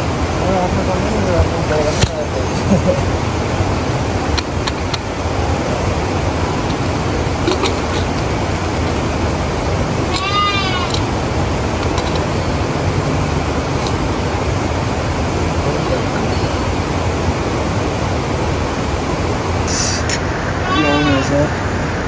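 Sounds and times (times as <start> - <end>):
steady rushing noise: 0.0 - 22.0
sheep bleat: 10.1 - 11.0, 20.6 - 21.4.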